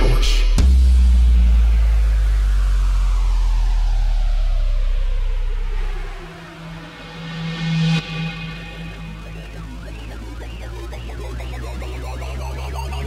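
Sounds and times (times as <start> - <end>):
falling pitch sweep: 2.7 - 13.0
low synth note: 7.5 - 13.0.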